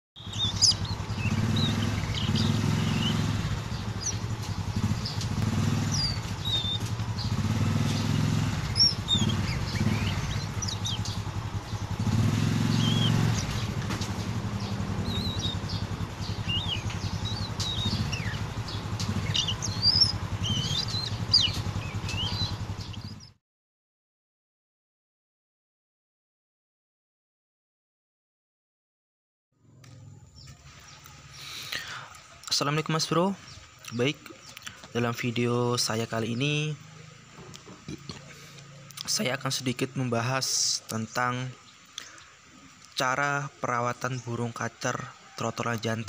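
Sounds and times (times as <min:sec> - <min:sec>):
bird chirping: 0:00.2 - 0:23.4, 0:29.6 - 0:46.0
low engine drone: 0:00.2 - 0:23.4.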